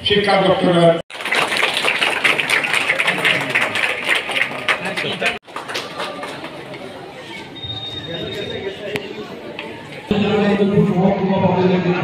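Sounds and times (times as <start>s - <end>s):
crowd clapping: 1.1s - 7.1s.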